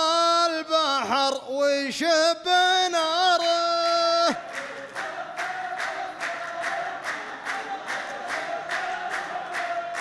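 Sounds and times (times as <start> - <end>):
men clapping in unison: 3.3 - 10.0.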